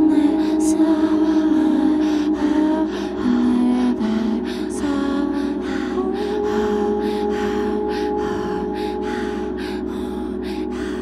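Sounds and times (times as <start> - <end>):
ambient drone music: 0.0 - 11.0.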